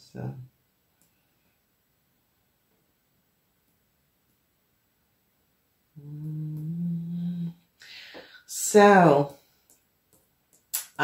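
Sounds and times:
woman humming: 6.0s - 7.7s
short breath: 7.8s - 8.5s.

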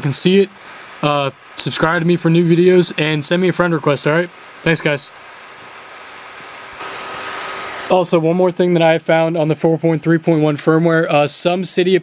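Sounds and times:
faint electronic hum: 0.0s - 12.0s
recording hiss: 0.0s - 12.0s.

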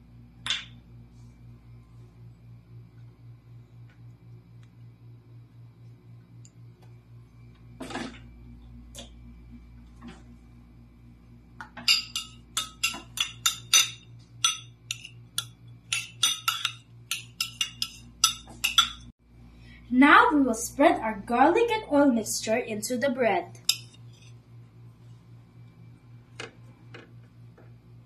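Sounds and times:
metal spoon clinking against glass bowl: 11.8s - 19.1s, 23.6s - 24.0s.

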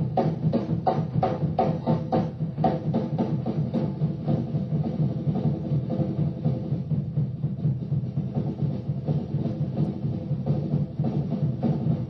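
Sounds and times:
drums and percussion: 0.0s - 12.0s
live jazz-rock band: 0.0s - 12.0s.

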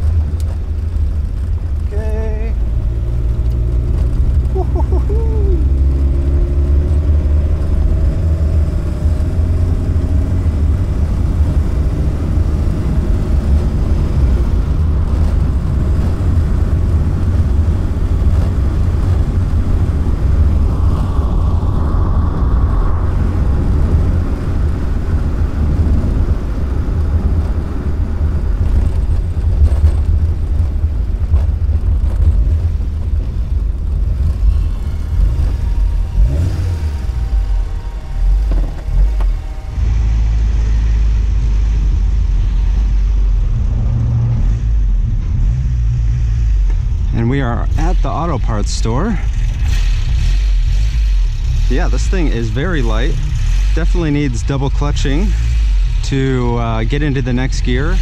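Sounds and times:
car engine pulling: 0.0s - 58.0s
road noise: 0.0s - 58.0s
wind noise: 0.0s - 58.0s.

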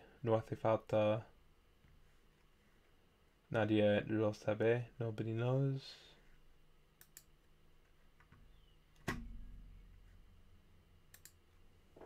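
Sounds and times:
computer mouse clicks: 7.0s - 7.3s, 11.1s - 11.4s.

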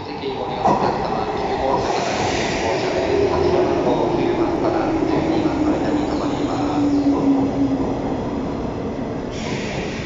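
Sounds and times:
electric train passing slowly: 0.0s - 10.0s.

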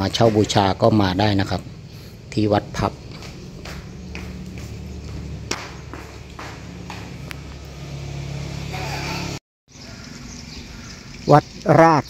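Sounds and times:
quiet outdoor ambience: 0.0s - 12.0s.

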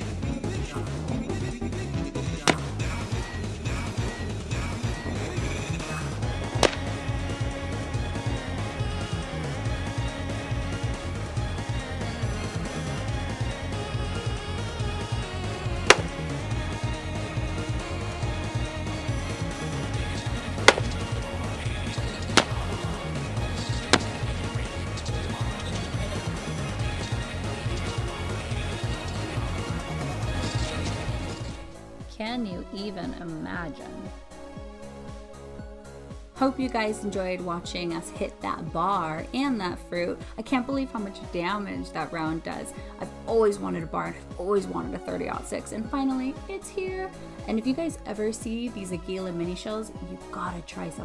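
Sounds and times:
sharp gunshots: 6.6s - 6.9s, 15.9s - 16.3s, 20.7s - 21.1s, 22.4s - 22.8s.

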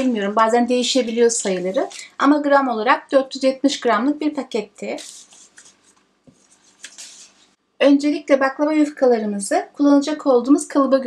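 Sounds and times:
pastry sheets rustling: 0.0s - 2.1s, 4.8s - 7.6s.

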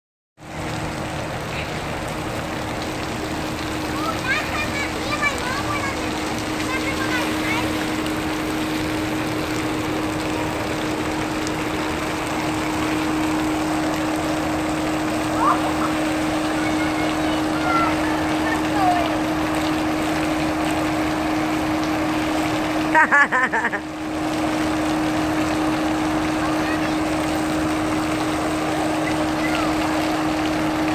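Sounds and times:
low hum: 0.4s - 30.9s
water jets spraying: 0.4s - 30.9s
distant voices calling: 1.2s - 22.9s.

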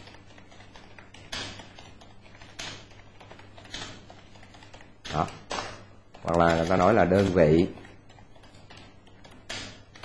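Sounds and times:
computer keyboard typing: 0.0s - 5.4s.

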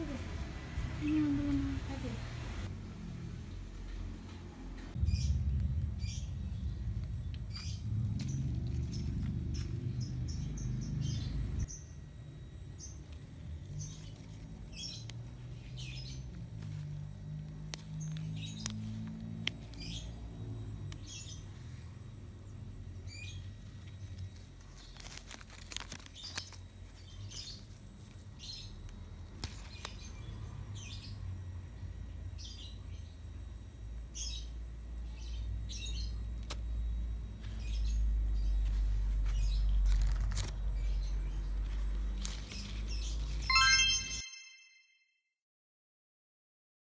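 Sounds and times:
steady low rumble: 2.6s - 11.7s
rustling: 23.8s - 27.4s.

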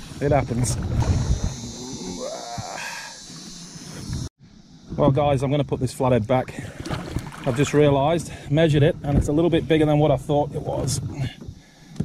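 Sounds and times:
water and kayak hull noise: 0.0s - 1.8s, 6.2s - 12.0s
man groaning: 1.7s - 3.2s.

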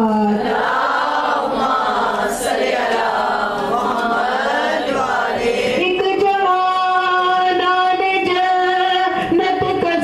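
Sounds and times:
women chanting together: 0.0s - 7.7s.

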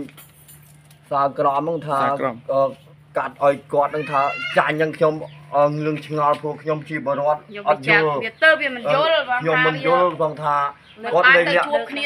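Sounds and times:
steady low hum: 0.0s - 12.0s
man speaking: 1.1s - 11.8s.

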